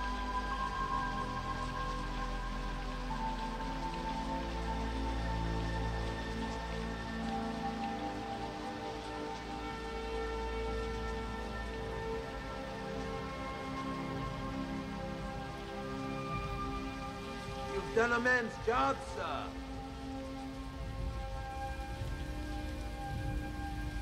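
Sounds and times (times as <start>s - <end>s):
steady rain falling: 0.0s - 24.0s.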